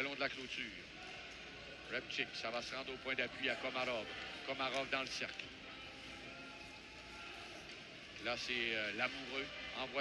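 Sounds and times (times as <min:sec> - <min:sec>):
low crowd murmur: 0:00.0 - 0:10.0
ice rink noise: 0:03.7 - 0:10.0.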